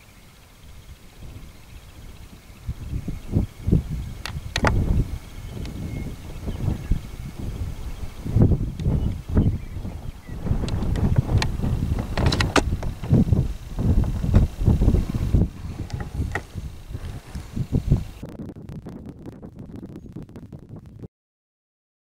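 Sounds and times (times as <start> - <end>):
wind buffeting microphone: 0.0 - 21.1
short crackles: 8.7 - 21.0.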